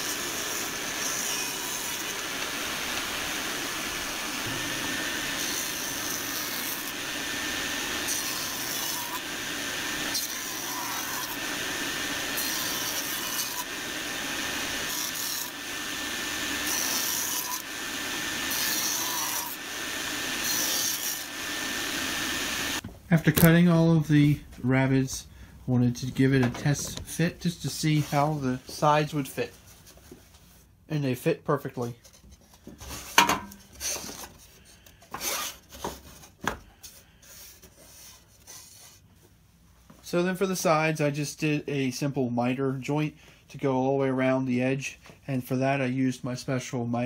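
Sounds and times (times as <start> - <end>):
steady saw whine: 0.0 - 22.8
table saw cutting wood: 0.0 - 22.8, 35.1 - 36.0.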